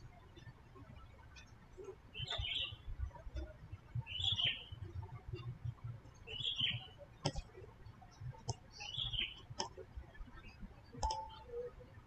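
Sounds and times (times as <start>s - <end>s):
bird chirping: 2.1s - 5.5s, 6.2s - 7.0s, 8.6s - 9.5s.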